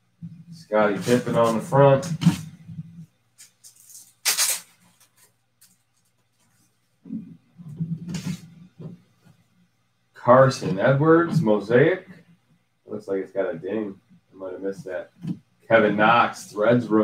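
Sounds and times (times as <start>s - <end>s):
plastic card sleeve crinkling: 3.4s - 6.5s.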